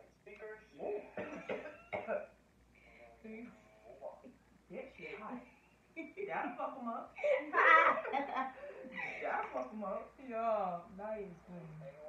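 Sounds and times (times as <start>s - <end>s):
woman coughing: 0.8s - 2.3s.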